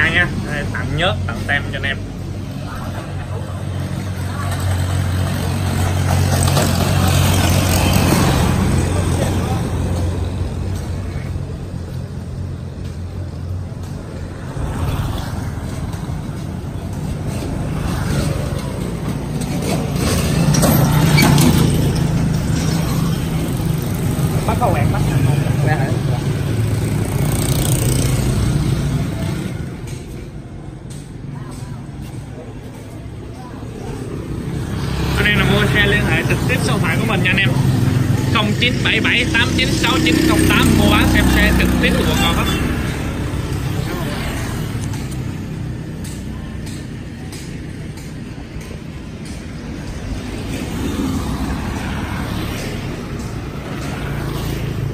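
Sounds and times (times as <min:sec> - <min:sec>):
motorbikes passing: 0:00.0 - 0:54.9
motorcycle tricycle passing close: 0:02.1 - 0:54.9.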